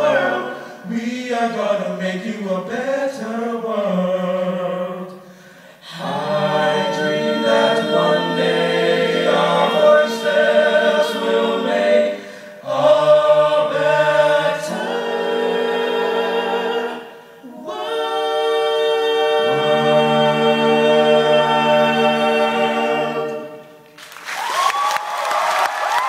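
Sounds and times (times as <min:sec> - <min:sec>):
a cappella group singing chords: 0:00.0 - 0:24.0.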